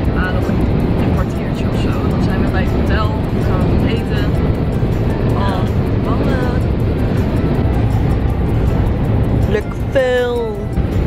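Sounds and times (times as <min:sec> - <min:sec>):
music: 0:00.0 - 0:11.0
road and engine rumble in car: 0:00.0 - 0:11.0.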